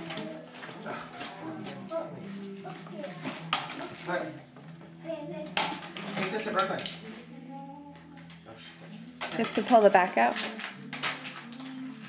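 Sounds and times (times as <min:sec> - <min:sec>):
faint voices: 0:00.0 - 0:10.9.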